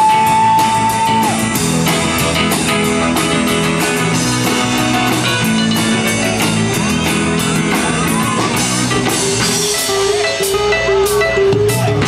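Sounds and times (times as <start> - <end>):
rock and roll band playing: 0.0 - 12.0.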